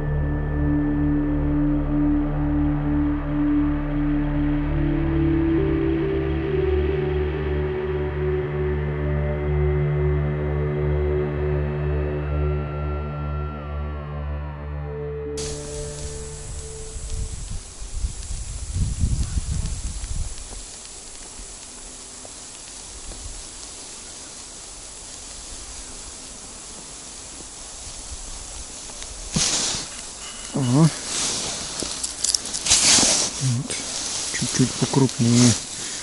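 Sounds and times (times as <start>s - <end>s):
wind rumble on microphone: 15.4s - 21.7s
outdoor hiss: 15.4s - 36.0s
rustling handling noises: 20.3s - 36.0s.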